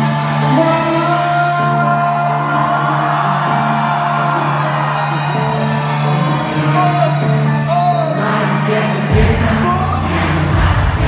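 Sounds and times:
crowd noise: 0:00.0 - 0:11.0
live music through speakers: 0:00.0 - 0:11.0.

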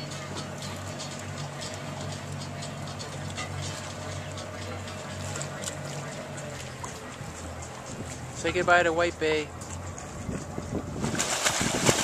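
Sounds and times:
water sounds: 0:00.0 - 0:12.0
wind buffeting microphone: 0:09.8 - 0:12.0.

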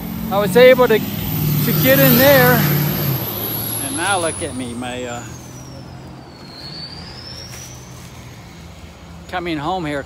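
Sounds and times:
vehicle engine running: 0:00.0 - 0:06.2.

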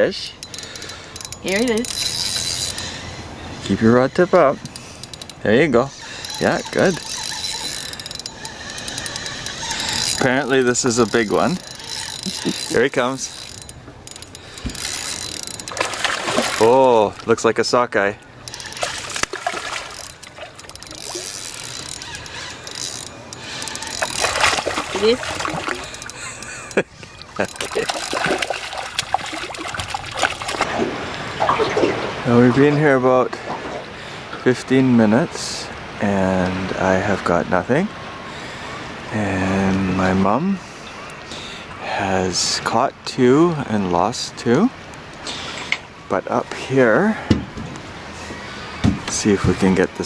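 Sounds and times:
trickling water: 0:00.0 - 0:35.0
fishing reel ratchet clicking: 0:00.4 - 0:03.0, 0:04.6 - 0:05.4, 0:06.2 - 0:16.6, 0:18.4 - 0:19.3, 0:19.9 - 0:26.8
fish splashing at water surface: 0:14.7 - 0:17.2, 0:18.8 - 0:21.2, 0:23.8 - 0:26.2, 0:27.4 - 0:32.6.

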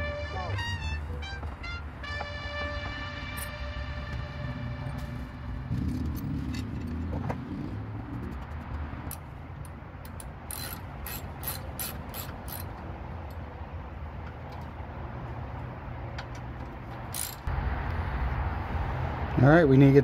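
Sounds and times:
ratchet clicking: 0:09.1 - 0:13.4, 0:17.0 - 0:17.5.

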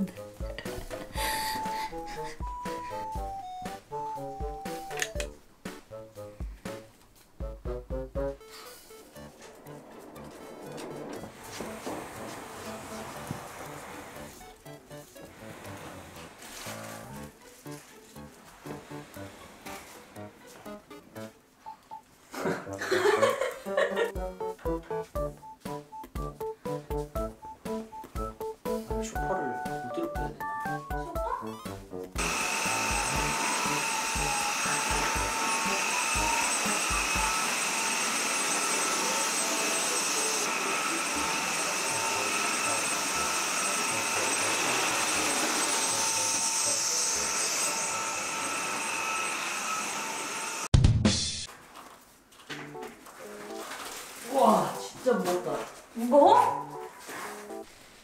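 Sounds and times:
vacuum cleaner running: 0:00.5 - 0:05.3, 0:08.3 - 0:17.4, 0:18.4 - 0:20.6, 0:32.2 - 0:50.7.

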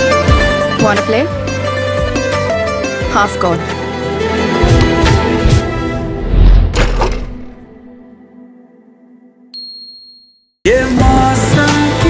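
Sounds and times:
high clear ding: 0:09.6 - 0:10.5
man singing: 0:10.6 - 0:12.0.

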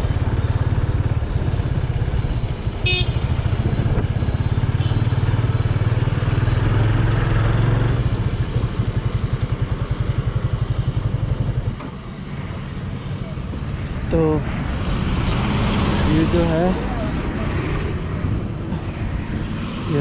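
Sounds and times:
motorcycle engine running: 0:00.0 - 0:11.7.

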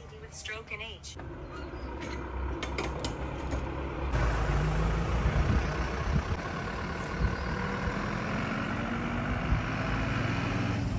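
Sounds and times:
truck engine pulling away: 0:01.2 - 0:10.9.

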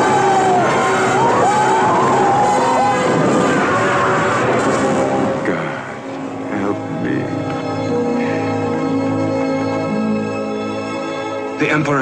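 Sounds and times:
orchestral film music: 0:00.0 - 0:12.0.

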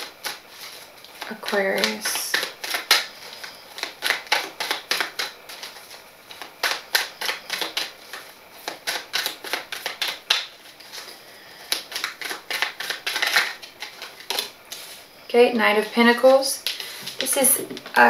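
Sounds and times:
cards being shuffled: 0:00.0 - 0:15.0.

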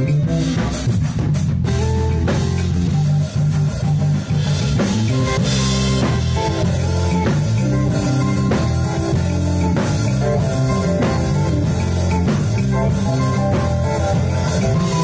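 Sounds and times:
bass guitar: 0:00.0 - 0:15.0
drum kit: 0:00.0 - 0:15.0
guitar: 0:00.0 - 0:15.0.

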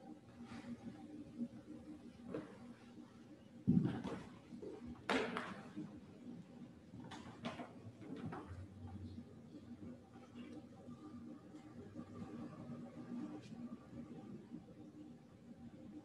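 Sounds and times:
low steady background noise: 0:00.0 - 0:16.0.

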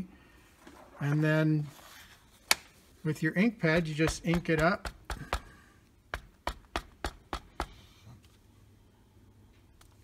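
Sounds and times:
stamp block tapping ink pad: 0:03.7 - 0:05.5.

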